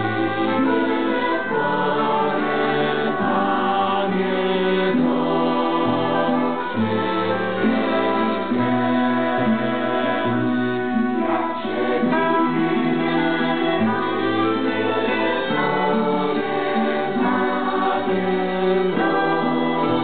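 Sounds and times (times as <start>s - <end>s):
choir singing a psalm: 0.0s - 20.0s
violins: 0.0s - 20.0s.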